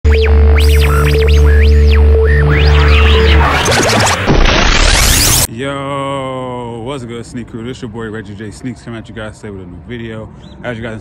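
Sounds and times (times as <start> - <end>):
intro music with deep bass: 0.0 - 5.5
tones sweeping in pitch: 0.0 - 5.5.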